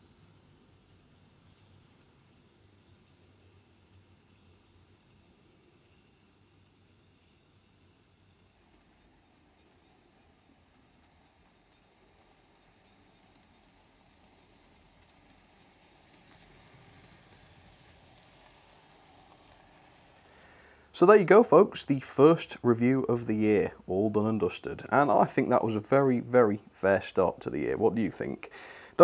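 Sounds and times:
model train wagons rolling: 0.0 - 29.0.

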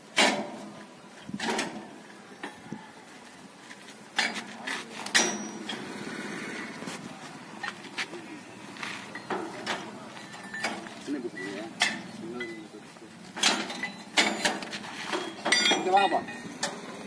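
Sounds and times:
metal parts knocking and clattering: 13.4 - 16.8.

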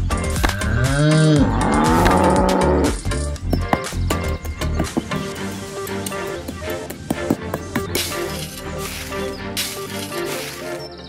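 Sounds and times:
background music with steady beat: 0.0 - 11.0
cow mooing: 0.6 - 3.1.

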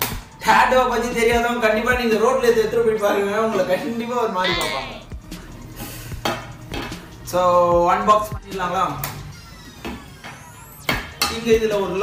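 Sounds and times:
man speaking: 0.5 - 5.0.

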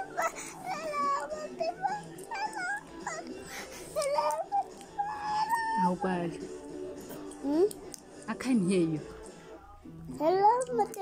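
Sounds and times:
infant cooing and babbling: 0.0 - 5.8.

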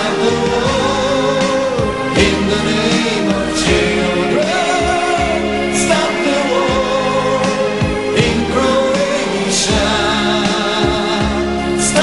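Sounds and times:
person singing: 0.0 - 12.0
pop band playing: 0.0 - 12.0
steady drum beat: 0.0 - 12.0.

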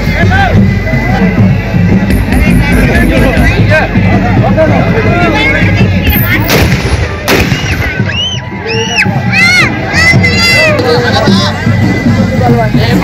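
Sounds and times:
crowd din: 0.0 - 13.0
party music: 0.0 - 13.0
gunshots: 6.1 - 8.1.

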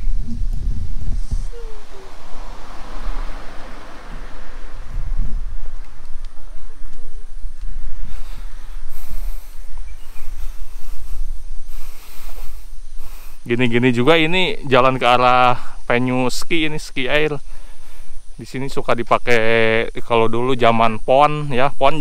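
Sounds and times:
wind rumbling on microphone: 0.0 - 14.7.

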